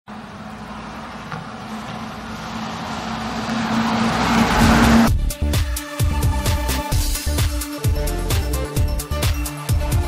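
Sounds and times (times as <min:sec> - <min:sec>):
bus engine hum and tyre noise: 0:00.1 - 0:05.2.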